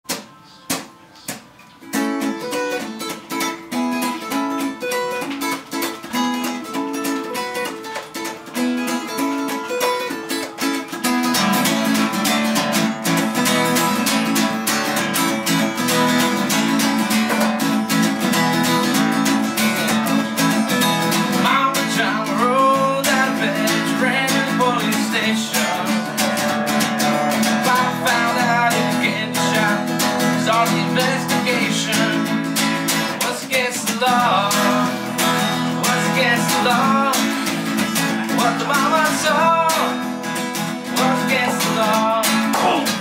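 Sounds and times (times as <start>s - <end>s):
acoustic guitar: 0.1s - 43.0s
man singing: 21.2s - 43.0s.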